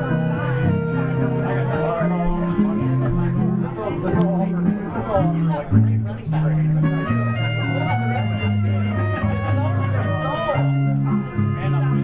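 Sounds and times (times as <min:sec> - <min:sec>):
acoustic guitar: 0:00.0 - 0:12.0
bass line: 0:00.0 - 0:12.0
clarinet: 0:00.0 - 0:12.0
violin: 0:00.0 - 0:12.0.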